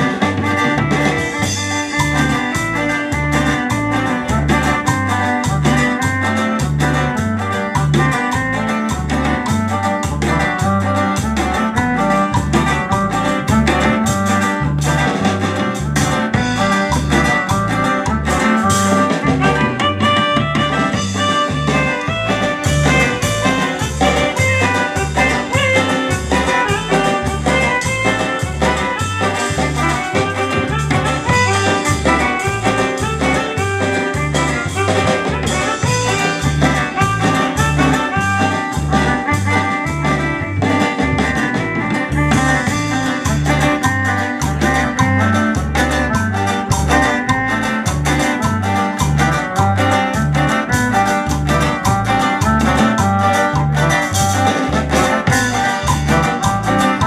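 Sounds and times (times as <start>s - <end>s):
bass beat: 0.0s - 57.0s
live band dance music: 0.0s - 57.0s.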